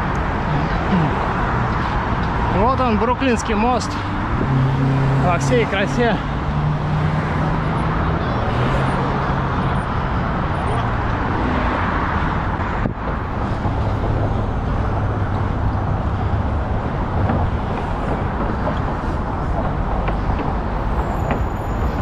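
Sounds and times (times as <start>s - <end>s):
tyres rushing on road: 0.0s - 22.0s.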